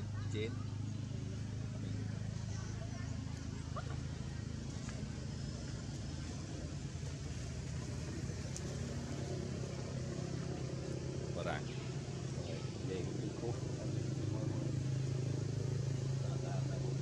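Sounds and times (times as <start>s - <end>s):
engine humming: 0.0s - 17.0s.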